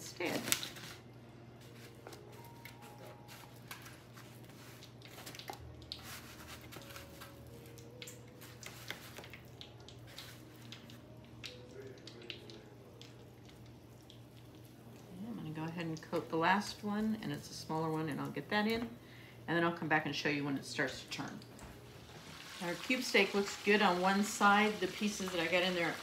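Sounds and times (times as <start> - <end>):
meat squishing in breadcrumbs: 1.8 - 15.2
steak frying in oil: 21.8 - 26.0.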